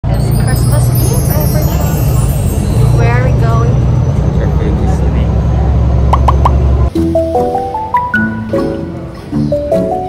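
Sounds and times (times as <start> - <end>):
bus engine rumble: 0.0 - 7.0.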